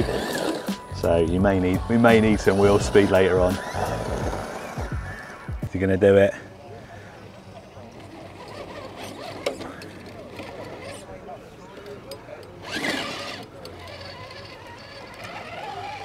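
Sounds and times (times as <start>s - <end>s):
electric motor and gearbox whirring: 0.0s - 5.8s, 7.9s - 16.0s.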